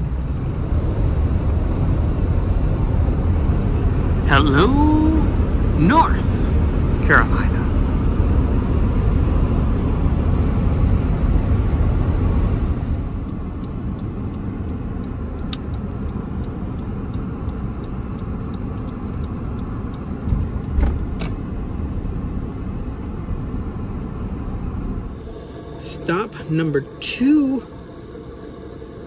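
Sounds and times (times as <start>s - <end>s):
car cabin road and engine noise: 0.0s - 29.0s
light regular ticking: 12.8s - 21.4s.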